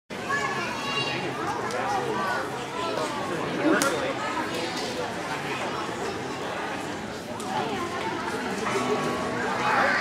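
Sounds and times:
chatter of many voices: 0.1 - 10.0
children's voices: 0.2 - 10.0.

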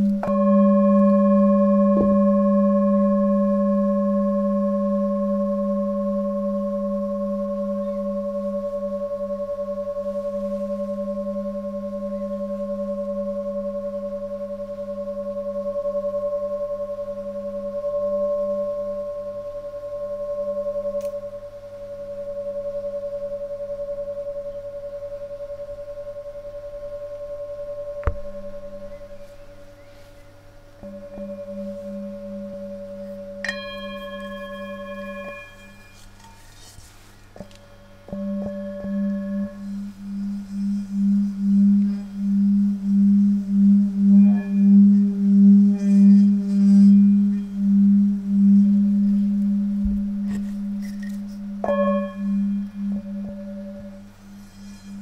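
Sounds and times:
singing bowl strike: 0.0 - 36.7, 37.4 - 55.0
singing bowl ringing: 0.0 - 55.0.

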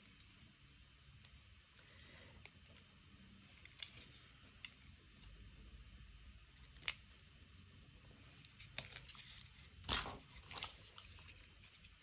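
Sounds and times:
paper handling: 8.3 - 12.0.

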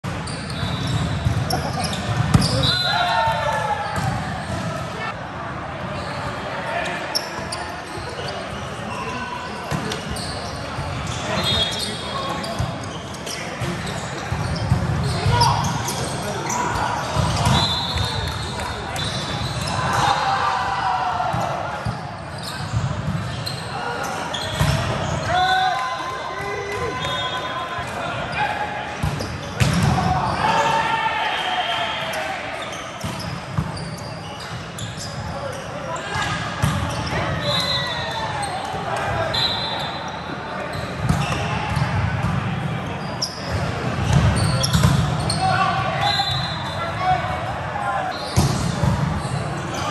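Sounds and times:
crowd voices: 0.0 - 49.9
players shouting: 1.6 - 5.2, 23.6 - 32.8.

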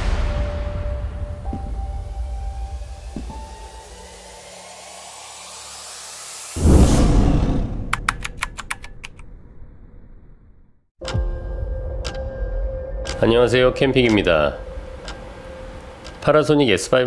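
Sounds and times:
heavy impact hit: 0.0 - 4.0
rising whoosh: 0.0 - 8.0
sharp ticks: 11.0 - 12.4, 13.0 - 16.4.

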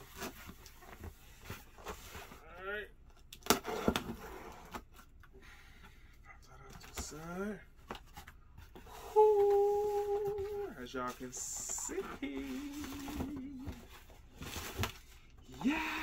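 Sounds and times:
cardboard scraping and rustling: 0.0 - 2.4, 3.4 - 5.1, 7.9 - 15.2
man humming: 9.0 - 10.8, 11.7 - 13.8, 15.5 - 16.0.

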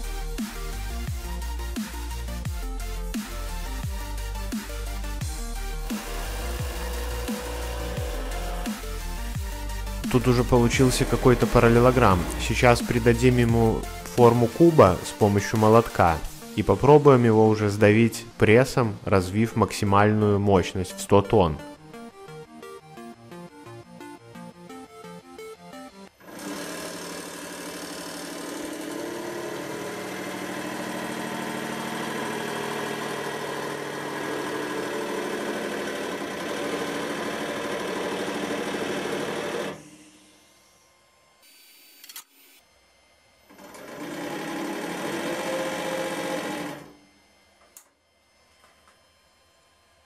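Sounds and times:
hydraulic pump motor whining: 5.2 - 14.2, 26.1 - 47.9.

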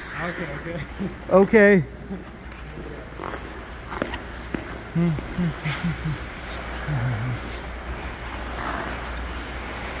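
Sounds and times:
ice skate blades gliding: 0.0 - 1.1, 2.0 - 10.0
steady low hum: 0.0 - 10.0.

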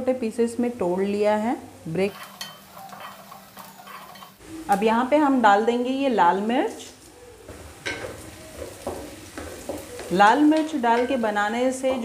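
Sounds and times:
frying sizzle: 0.4 - 12.0
spatula scraping pan: 2.0 - 4.4.

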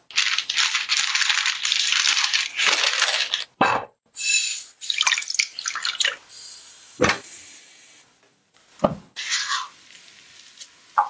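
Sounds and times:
water pouring into saucepan: 4.9 - 6.2.

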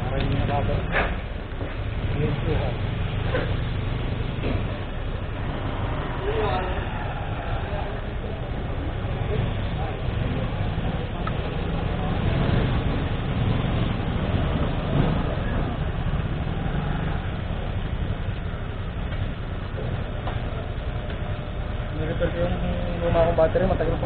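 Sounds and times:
motorcycle engines idling: 0.0 - 24.0
muffled voices: 0.0 - 24.0.

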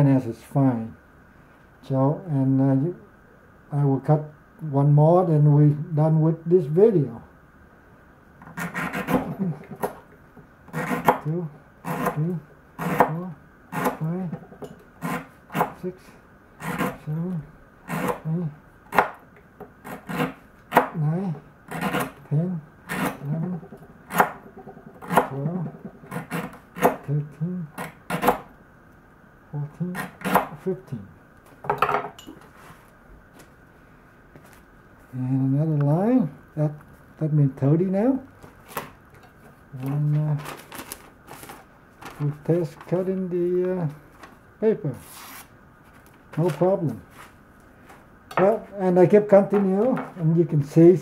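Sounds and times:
knife scraping on cutting board: 8.4 - 10.0, 10.7 - 12.2, 12.8 - 14.1, 16.6 - 17.0, 19.8 - 20.9, 21.7 - 22.2, 22.9 - 23.4, 26.0 - 27.0.

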